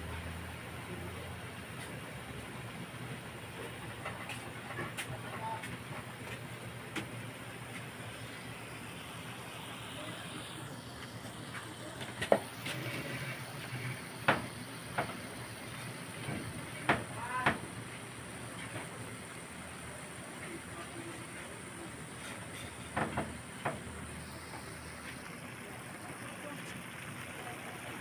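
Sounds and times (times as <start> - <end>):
squid sizzling in a wok: 8.0 - 28.0.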